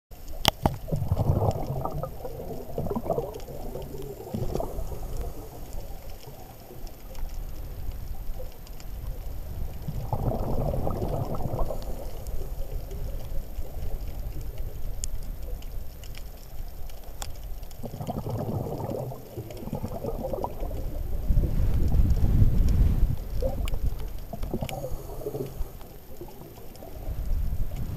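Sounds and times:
low underwater rumble: 0.1s - 27.9s
exhaled bubbles gurgling underwater: 0.2s - 27.9s.

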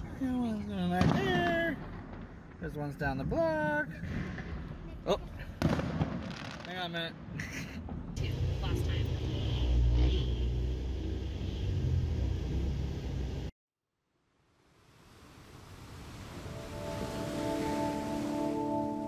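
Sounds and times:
motorcycle engines rumbling: 8.0s - 13.5s
bell-like ambient music tones: 16.4s - 19.0s.

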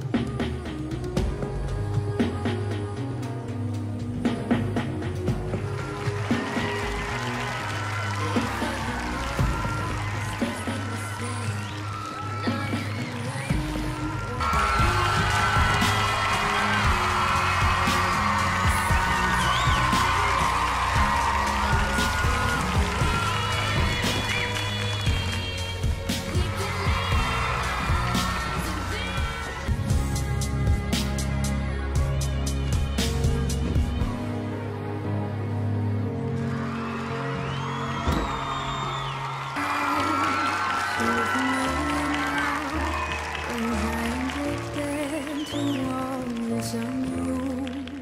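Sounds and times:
dance music with bass beat: 12.5s - 31.4s.

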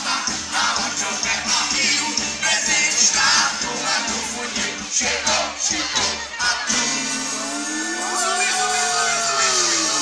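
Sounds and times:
audience shouting along: 5.4s - 10.0s.

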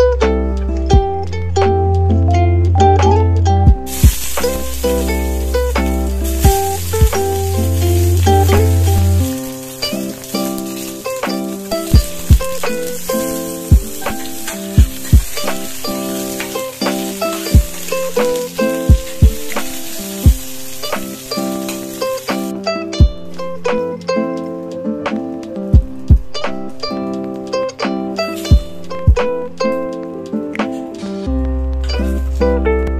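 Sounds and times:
plucked-string background music: 0.0s - 32.9s
low thumps: 0.9s - 9.5s, 11.9s - 13.1s, 13.7s - 15.9s
vegetable sizzling in hot oil: 3.8s - 22.6s
spatula turning food: 3.9s - 22.5s.

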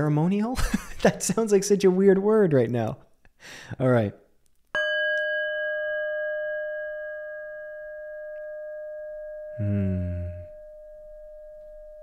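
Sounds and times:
singing bowl ringing: 4.8s - 9.6s, 10.5s - 12.0s.

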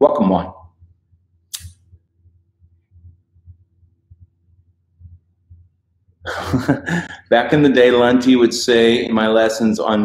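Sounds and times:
faint steady hum: 0.0s - 10.0s
faint low thumps: 1.9s - 6.8s.

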